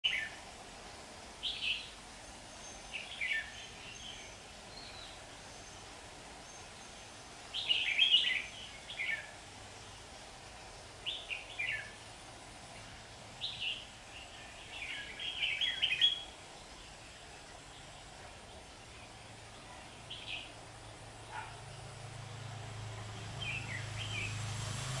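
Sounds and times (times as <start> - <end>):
bulbuls singing: 1.4 - 12.1, 12.7 - 24.4.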